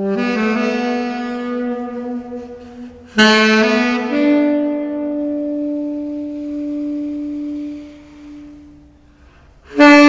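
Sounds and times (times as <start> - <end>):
tenor saxophone long note: 0.0 - 10.0.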